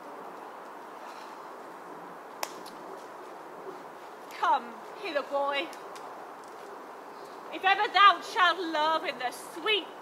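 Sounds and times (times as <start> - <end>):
open-air background hiss: 0.0 - 10.0.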